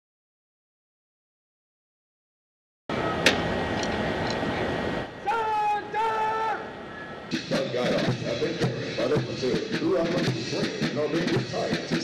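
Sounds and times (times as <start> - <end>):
outdoor rush of noise: 2.9 - 12.0
drill instructor calling command: 5.2 - 6.8
marching band drums: 7.3 - 12.0.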